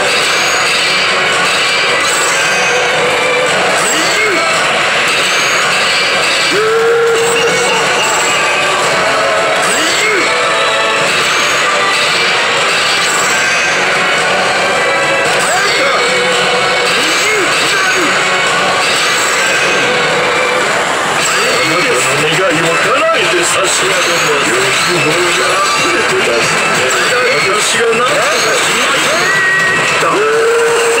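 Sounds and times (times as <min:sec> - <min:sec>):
electronic effects: 0:00.0 - 0:31.0
slot machine music: 0:00.0 - 0:31.0.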